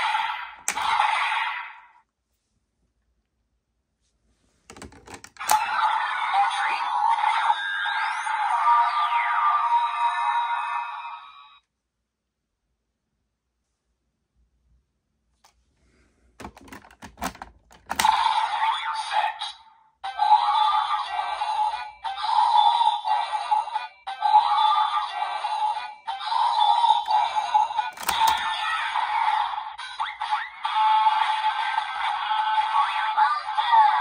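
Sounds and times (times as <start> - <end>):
toy buckle clicks: 27.9 - 28.6.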